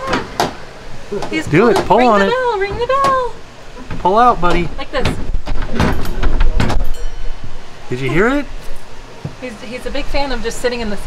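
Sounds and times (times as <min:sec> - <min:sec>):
faint steady bell ringing: 0:06.8 - 0:08.8.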